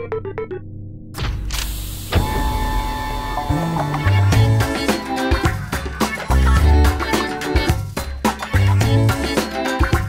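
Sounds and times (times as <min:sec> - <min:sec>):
mechanical hum with ringing tones: 0:01.2 - 0:04.0.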